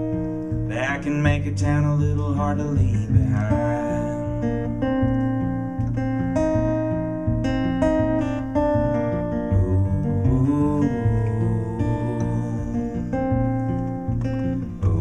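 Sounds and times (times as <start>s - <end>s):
acoustic guitar playing: 0.0s - 15.0s.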